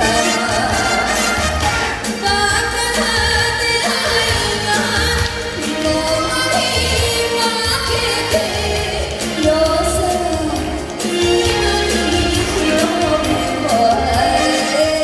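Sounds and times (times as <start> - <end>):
backing music with bass beat: 0.0 - 15.0
woman singing into microphone: 0.0 - 15.0.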